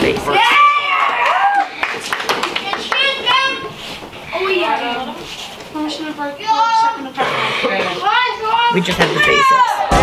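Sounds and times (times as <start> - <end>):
child's high-pitched voice: 2.7 - 4.9.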